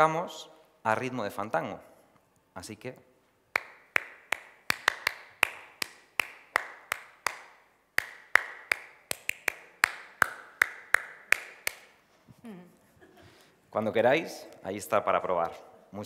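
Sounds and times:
hand claps ringing in a hall: 3.5 - 12.0.

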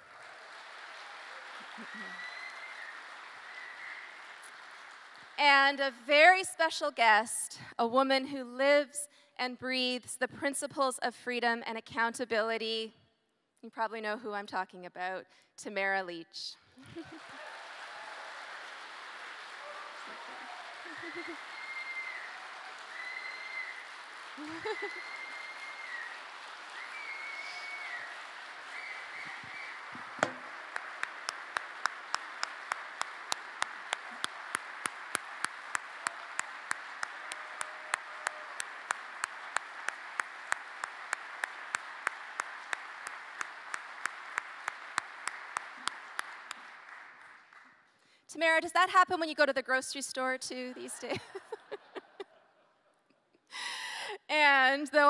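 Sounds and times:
rhythmic clapping in unison: 0.0 - 5.4, 16.8 - 48.0
audience applauding: 0.0 - 5.8, 16.8 - 47.9
high calls from audience: 1.0 - 4.4.

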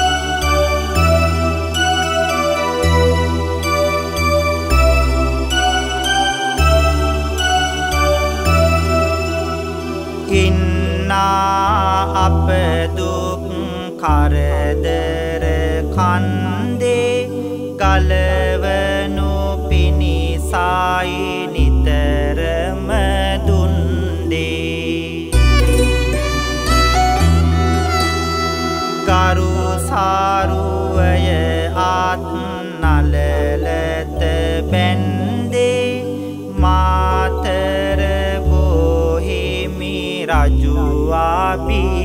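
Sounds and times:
held bass notes: 0.0 - 42.0
monk singing devotional verses: 10.3 - 25.9, 28.9 - 42.0.

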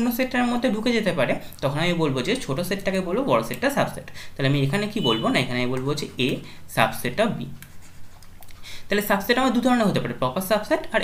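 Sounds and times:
person speaking: 0.0 - 11.0
pen scratching on paper: 7.6 - 8.4.

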